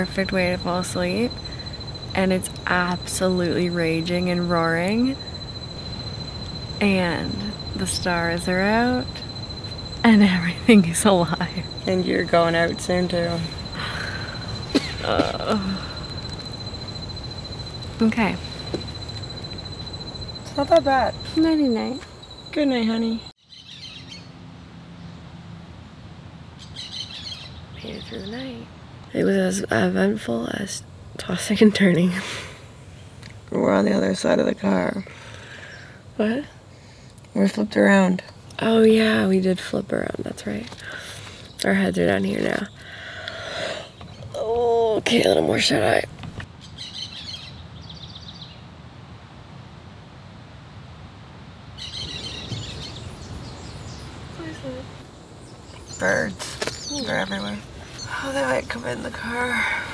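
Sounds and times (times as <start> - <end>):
low steady rumble: 0.0 - 23.3
birds chirping: 0.0 - 24.4, 26.6 - 32.2, 38.2 - 48.6, 51.8 - 59.9
steady background hiss: 0.0 - 59.9.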